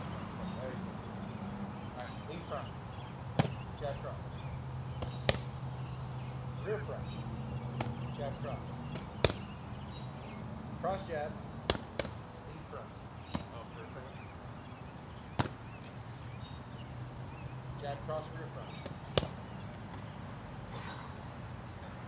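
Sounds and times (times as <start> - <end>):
punches hitting focus mitts: 3.3 - 3.7, 4.9 - 5.6, 7.7 - 9.6, 11.6 - 12.2, 13.3 - 13.7, 15.3 - 15.7, 18.6 - 20.0.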